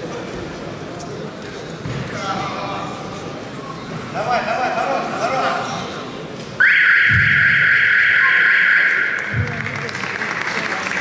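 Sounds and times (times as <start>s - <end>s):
crowd noise: 0.0s - 11.0s
applause: 8.8s - 11.0s.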